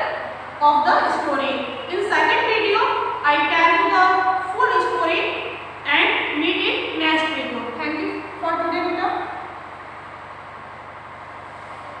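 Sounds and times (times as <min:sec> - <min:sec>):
woman speaking: 0:00.0 - 0:09.4
steady background hiss: 0:00.0 - 0:12.0.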